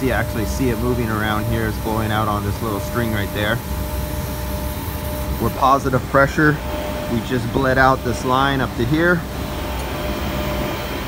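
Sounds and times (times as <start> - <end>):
gas hissing from hose: 0.0 - 11.0
low equipment hum: 0.0 - 11.0.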